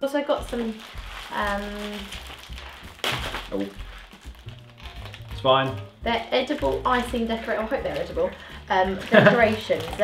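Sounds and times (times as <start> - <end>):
background music: 0.0 - 10.0
packaging crinkling: 0.3 - 10.0
plastic packaging tearing: 0.4 - 10.0.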